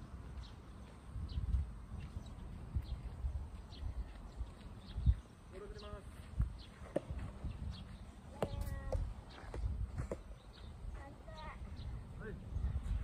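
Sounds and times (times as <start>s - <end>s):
wind rumble on microphone: 0.0s - 13.0s.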